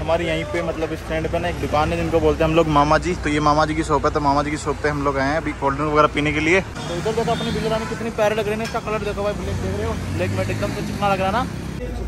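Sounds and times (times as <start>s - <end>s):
man speaking: 0.0s - 12.0s
road traffic rumble: 0.0s - 12.0s.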